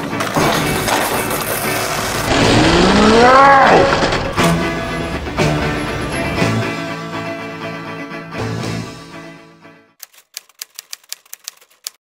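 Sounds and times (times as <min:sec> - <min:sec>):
typewriter key clacks: 0:10.0 - 0:12.0.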